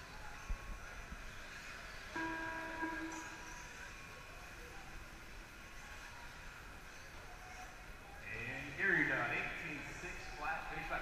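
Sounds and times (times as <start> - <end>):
steady pitched tone: 2.2 - 3.7.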